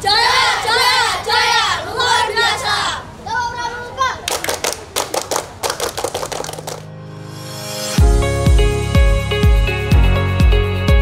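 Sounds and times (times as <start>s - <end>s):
children clapping hands: 4.3s - 6.9s
music: 6.7s - 11.0s.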